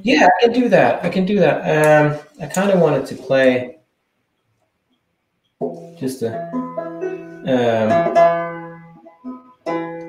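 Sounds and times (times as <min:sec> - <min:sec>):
banjo string plucked: 0:05.6 - 0:10.0.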